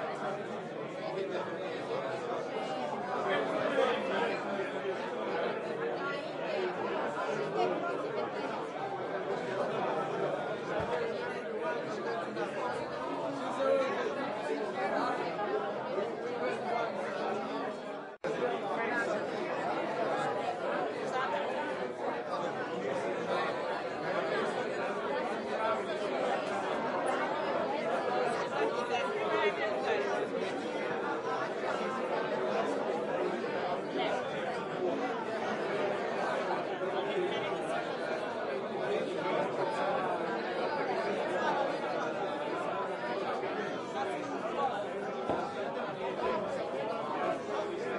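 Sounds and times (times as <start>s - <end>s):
overlapping party chatter: 0.0s - 47.9s.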